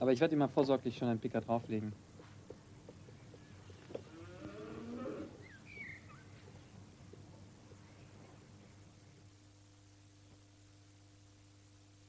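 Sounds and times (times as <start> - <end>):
low drawn-out animal call: 3.4 - 6.4.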